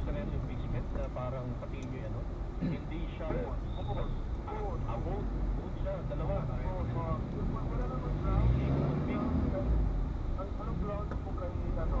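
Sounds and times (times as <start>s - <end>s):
car engine rumble: 0.0s - 12.0s
surrounding traffic: 0.0s - 12.0s.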